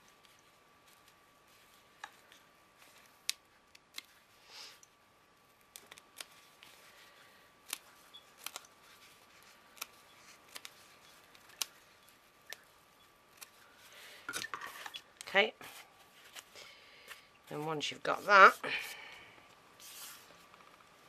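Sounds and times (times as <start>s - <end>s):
scissors snipping foam: 7.6s - 8.7s, 9.4s - 11.8s
person speaking: 15.2s - 15.8s, 17.4s - 19.1s.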